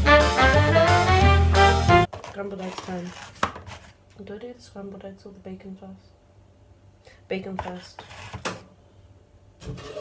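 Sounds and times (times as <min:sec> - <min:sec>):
plastic food packaging rustling: 0:02.1 - 0:04.0.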